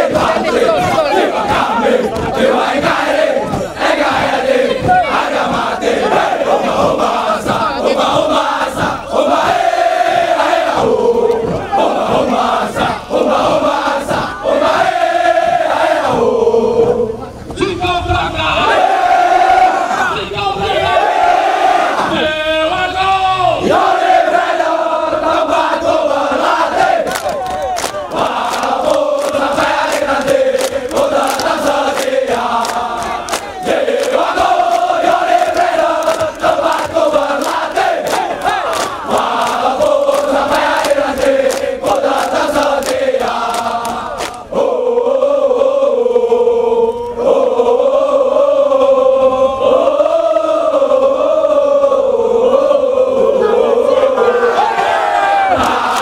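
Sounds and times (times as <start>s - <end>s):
sharp rhythmic beats: 0.0s - 15.0s, 25.9s - 44.5s
soldiers chanting in unison: 0.0s - 17.3s, 18.3s - 22.9s, 23.5s - 56.0s.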